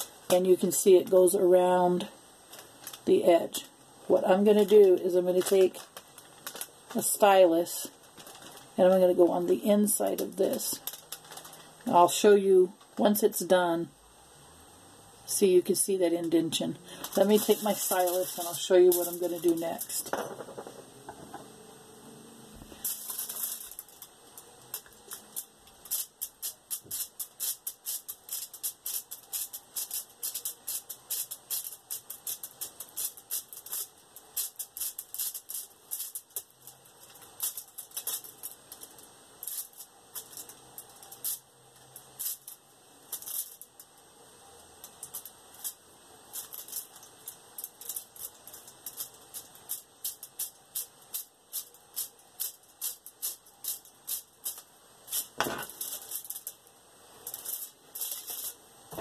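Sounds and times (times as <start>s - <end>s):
aluminium foil crackling: 0.0s - 13.7s, 15.3s - 20.2s, 22.6s - 59.0s.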